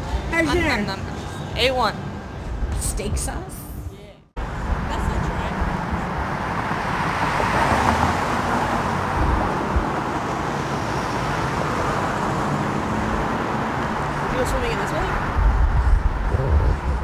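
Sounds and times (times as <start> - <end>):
cars driving through intersection: 4.4 - 17.0.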